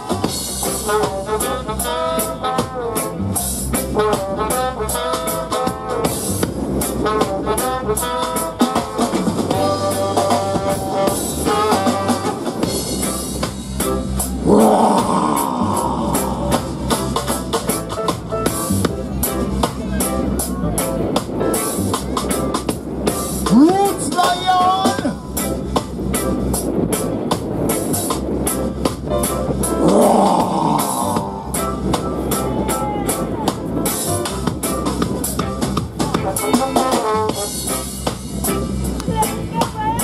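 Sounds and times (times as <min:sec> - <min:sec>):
reggae band playing: 0:00.0 - 0:40.0.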